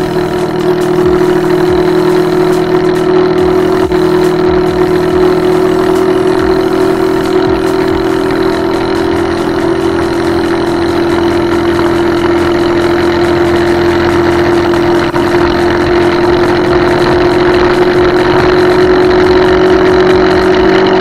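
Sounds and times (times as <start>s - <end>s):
scooter engine running: 0.0s - 21.0s.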